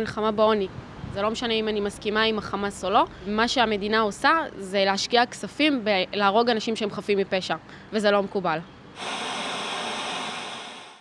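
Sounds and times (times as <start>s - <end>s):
white noise hiss: 9.0s - 11.0s.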